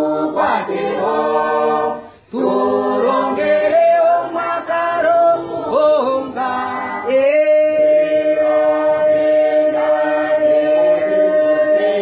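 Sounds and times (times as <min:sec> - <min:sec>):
man singing unaccompanied: 0:02.4 - 0:12.0.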